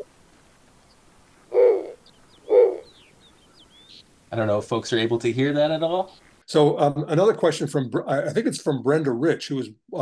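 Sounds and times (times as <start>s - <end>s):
owl hooting: 1.4s - 4.1s.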